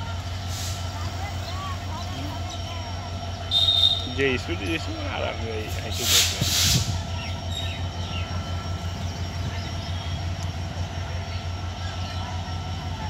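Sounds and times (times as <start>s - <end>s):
distant locomotive engine rumble: 0.0s - 13.0s.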